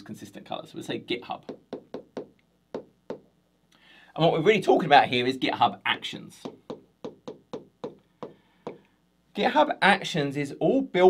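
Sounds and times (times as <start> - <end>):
stylus tapping on glass: 1.4 - 3.3, 6.4 - 8.8.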